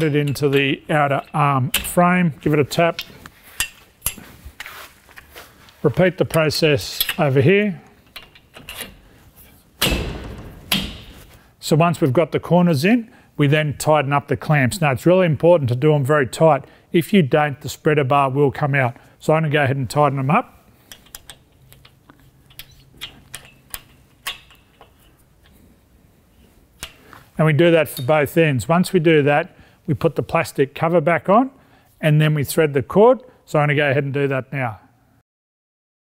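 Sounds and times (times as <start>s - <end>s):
knocks on metal frame: 9.8s - 11.3s
light metallic clicks and taps: 20.9s - 25.6s.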